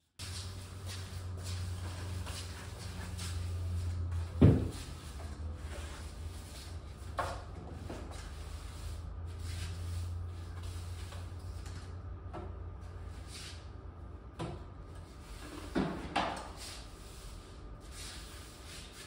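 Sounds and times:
push broom sweeping concrete: 0.2 - 11.6, 15.2 - 19.0
steady low hum: 0.2 - 19.0.

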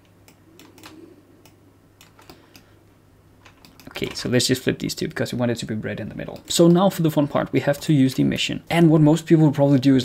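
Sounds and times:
keyboard and mouse clicks: 0.0 - 2.7, 3.4 - 4.3
low steady hum: 0.0 - 10.0.

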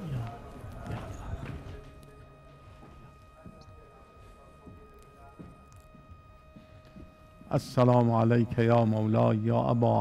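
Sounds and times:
faint steady high tone: 0.0 - 10.0.

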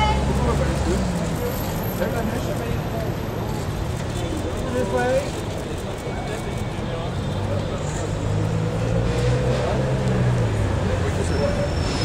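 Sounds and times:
street noise: 0.0 - 12.0
vehicle engine rumbling: 0.0 - 12.0.

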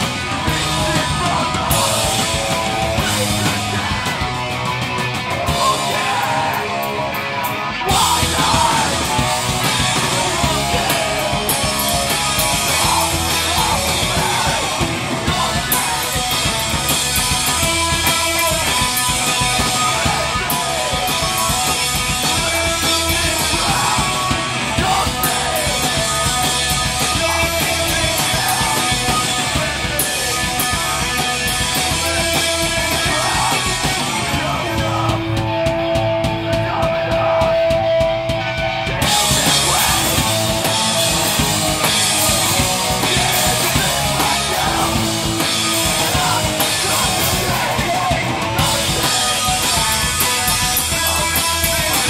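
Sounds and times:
bass guitar: 0.0 - 52.0
distorted electric guitars: 0.0 - 52.0
drum kit with cymbals: 0.0 - 52.0.

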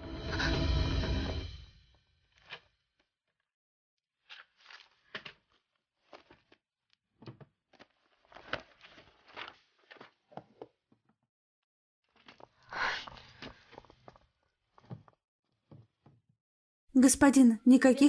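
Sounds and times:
book pages leafed through: 4.2 - 6.6, 7.7 - 10.6, 12.1 - 15.1.

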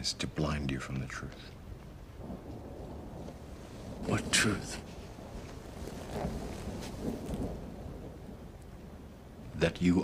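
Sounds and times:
faint rain hiss: 0.0 - 10.0
distant thunder rumbling: 1.3 - 10.0.

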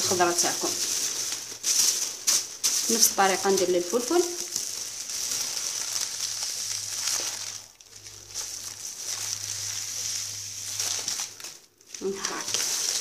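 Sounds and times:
plastic bag rustling: 0.0 - 13.0.

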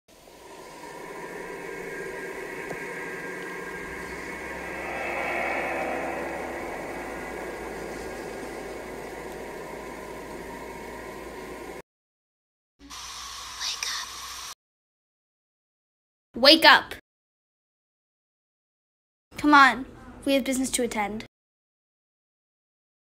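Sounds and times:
static-like hiss: 5.8 - 11.8.

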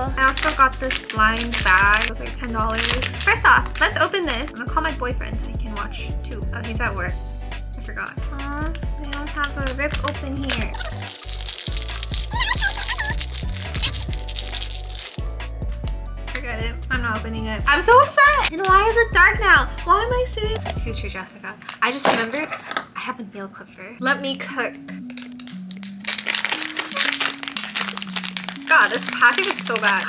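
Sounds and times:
foil packet crinkling: 0.0 - 4.5, 9.4 - 15.2, 25.0 - 30.0
background music: 0.0 - 21.6, 23.9 - 30.0.

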